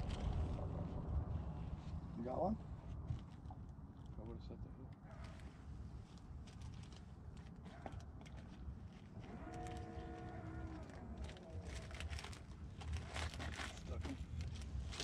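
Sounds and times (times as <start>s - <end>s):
wind rumble on microphone: 0.0s - 3.7s
distant cow mooing: 9.2s - 11.7s.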